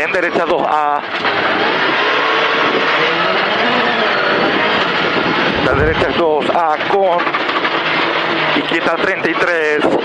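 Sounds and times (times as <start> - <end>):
rally car engine running hard: 1.0 - 9.2.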